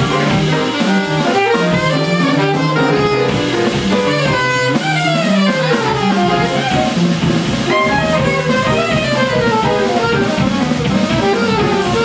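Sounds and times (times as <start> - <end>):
drums: 0.0 - 12.0
guitar: 0.0 - 12.0
piano chords: 0.0 - 12.0
saxophone melody: 0.0 - 12.0.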